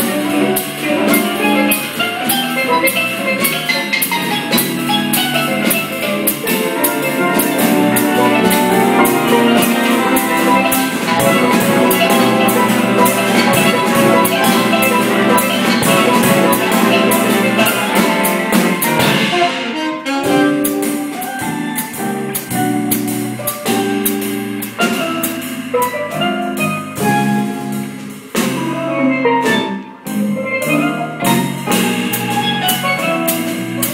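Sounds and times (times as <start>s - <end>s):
saxophone section playing jazz: 0.0s - 29.7s, 30.3s - 33.9s
drum kit: 0.0s - 33.9s.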